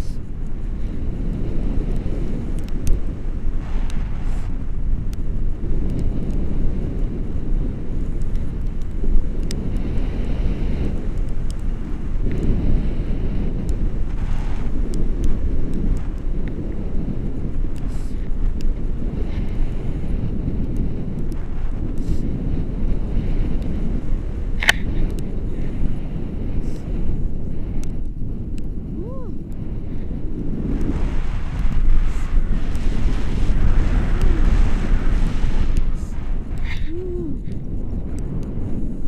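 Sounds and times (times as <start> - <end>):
wind buffeting microphone: 0.0 - 39.0.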